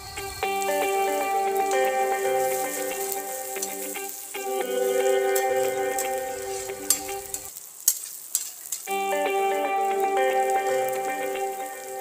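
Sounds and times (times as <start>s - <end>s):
background music with held notes: 0.0s - 7.5s, 8.9s - 12.0s
onions sizzling in hot oil: 0.0s - 12.0s
metal spatula clicking on pan: 6.9s - 9.1s.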